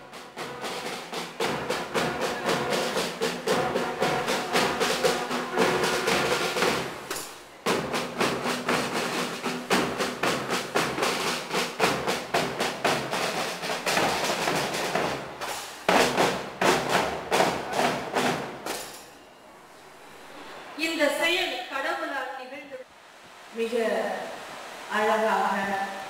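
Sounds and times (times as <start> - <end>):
fast drumming: 0.0 - 19.0.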